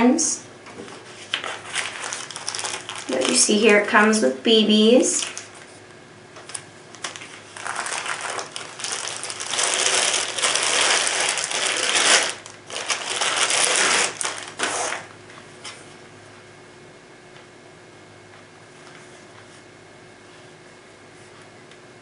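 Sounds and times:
plastic wrapping rustling: 0.8s - 4.0s, 5.1s - 5.8s, 6.4s - 15.8s.

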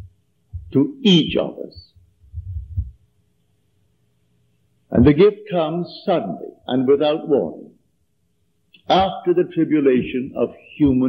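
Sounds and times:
low muffled thumps: 0.0s - 3.0s, 4.9s - 5.2s.

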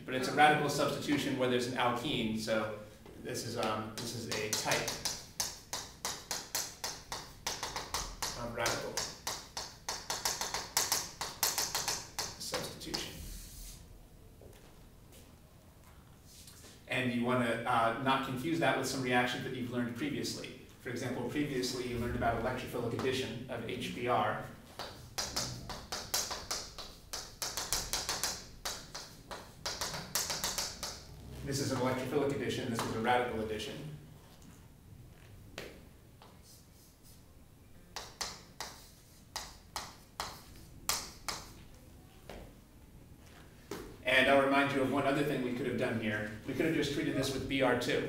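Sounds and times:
chalk tapping and scratching: 3.5s - 13.8s, 24.6s - 31.1s, 35.6s - 37.2s, 37.9s - 41.7s.

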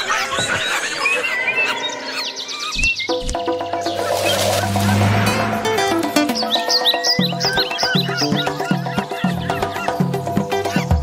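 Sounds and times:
high chirping glides: 1.5s - 7.7s.

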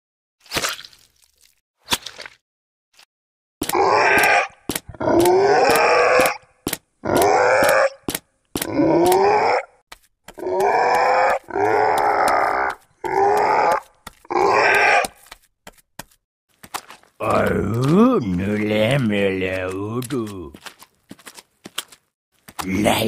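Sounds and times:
gruff creature voice grunting: 17.2s - 20.6s, 22.6s - 23.0s.

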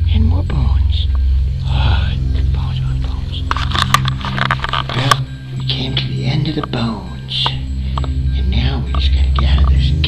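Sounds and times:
indistinct voices: 0.0s - 10.0s
steady low hum: 0.0s - 10.0s.

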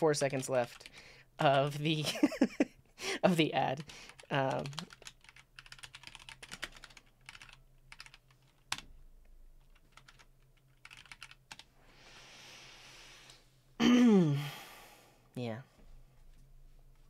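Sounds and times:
typing on computer keyboard: 3.8s - 8.9s, 9.6s - 11.7s
soft hiss: 11.7s - 13.8s.

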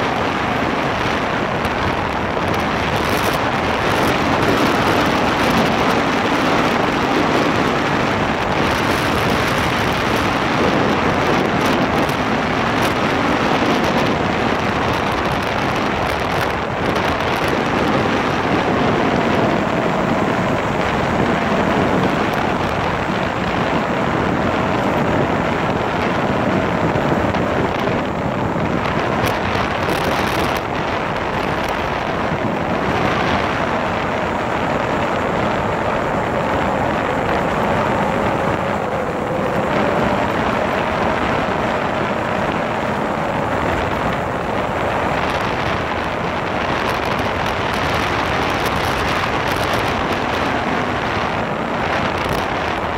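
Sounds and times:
motorcycle engine: 0.0s - 52.9s
wind rushing over microphone: 0.0s - 52.9s.

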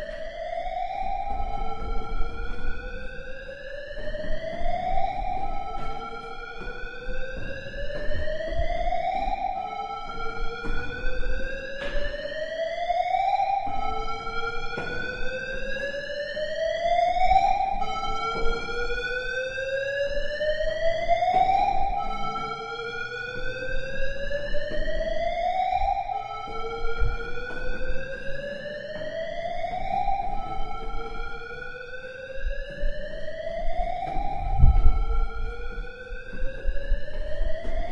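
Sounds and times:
electronic siren-like rising tones: 2.7s - 36.0s.

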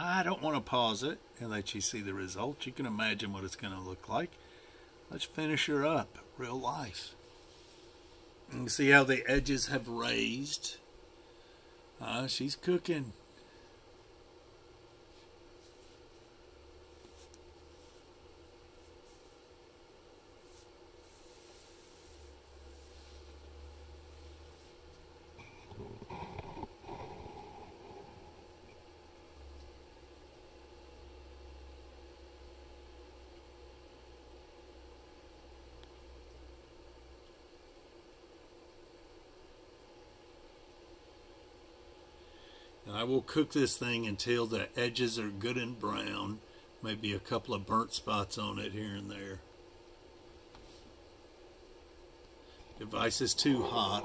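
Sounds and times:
air fryer oven humming: 0.0s - 54.0s.

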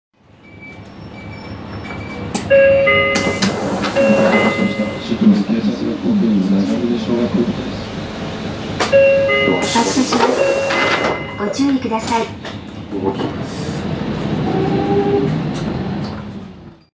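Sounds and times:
bus idling: 0.2s - 16.9s
turn signal alarm beeping: 0.4s - 5.2s, 8.9s - 11.6s.

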